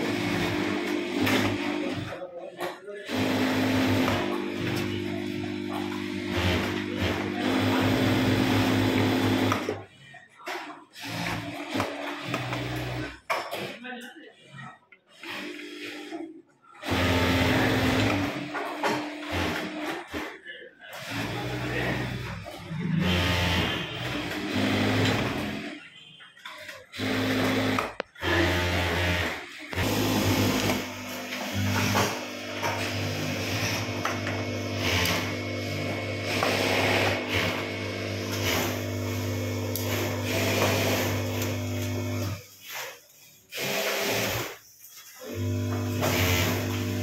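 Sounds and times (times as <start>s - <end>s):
sewing machine stitching: 0.0s - 9.8s, 10.5s - 13.8s, 15.1s - 25.9s, 26.5s - 47.0s.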